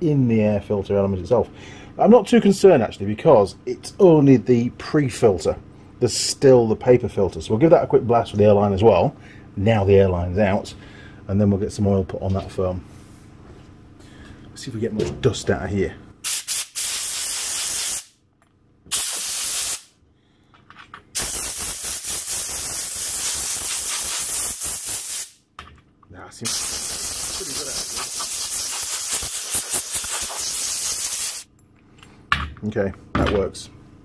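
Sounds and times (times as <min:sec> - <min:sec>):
compressed air blow gun hissing: 0:16.2 - 0:18.1, 0:18.9 - 0:19.9, 0:21.2 - 0:25.4, 0:26.5 - 0:31.5.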